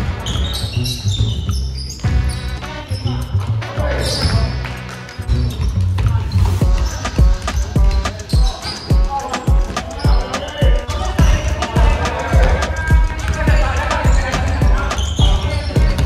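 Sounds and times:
background music with low thumps: 0.0s - 16.0s.

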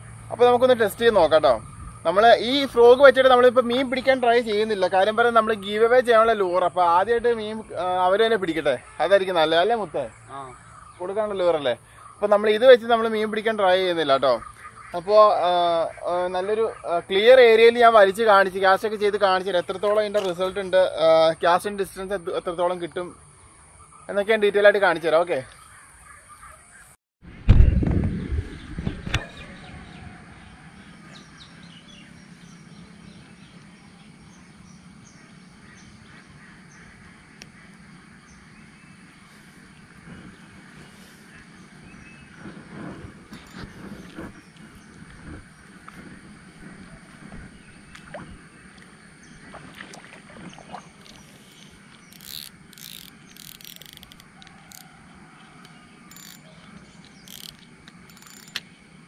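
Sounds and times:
loud thump: 27.4s - 29.4s
sharp clicks: 51.0s - 54.9s, 55.6s - 58.8s
spinning reel clicks: 52.1s - 54.8s, 56.1s - 56.5s, 57.1s - 58.7s.

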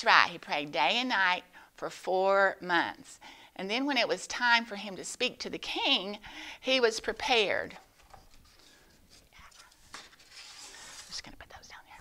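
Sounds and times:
paper rustling and ticking: 7.3s - 11.3s.

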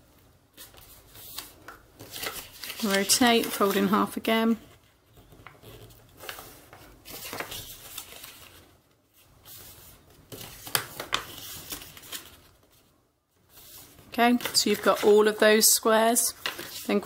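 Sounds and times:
paper rustling and creasing: 0.5s - 17.0s.

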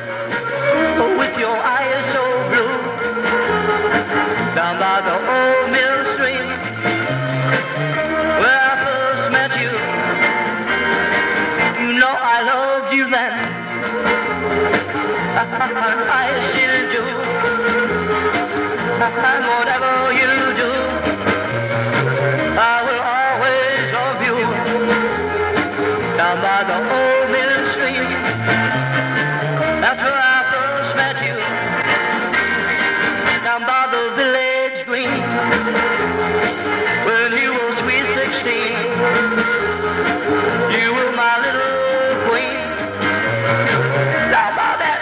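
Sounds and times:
person singing: 0.0s - 45.0s
rockabilly band music: 0.0s - 45.0s.

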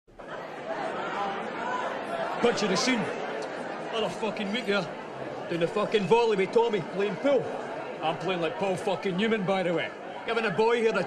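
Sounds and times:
crowd chatter: 0.1s - 11.0s.

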